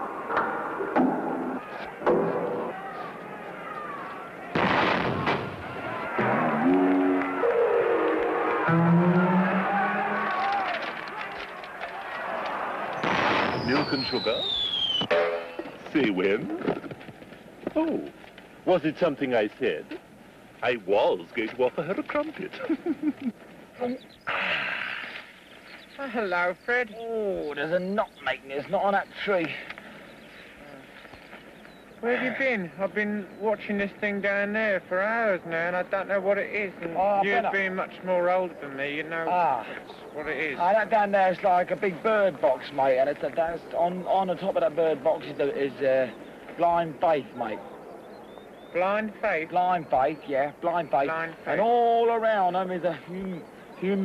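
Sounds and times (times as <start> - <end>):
cannon firing bang: 4.6 - 6.6, 13.0 - 14.2
sliding comedy tones: 6.2 - 11.2
falling high whistle: 6.3 - 10.7, 13.4 - 15.2
breathy hissing exhale: 24.3 - 25.3.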